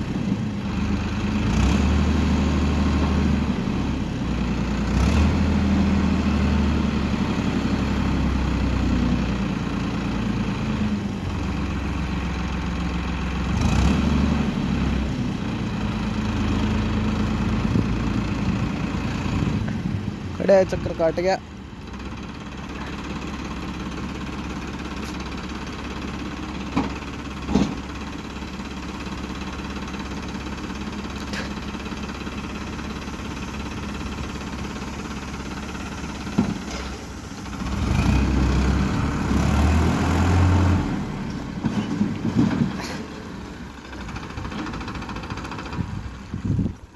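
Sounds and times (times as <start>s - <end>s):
tractor diesel engine idling: 0.0s - 46.9s
sharp engine knocks: 26.6s - 28.0s, 36.2s - 37.0s.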